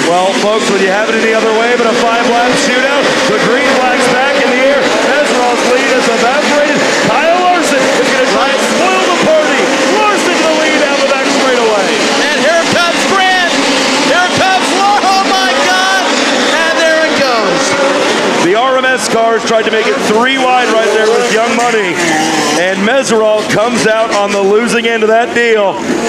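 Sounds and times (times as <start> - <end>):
race car engines revving: 0.0 - 26.0.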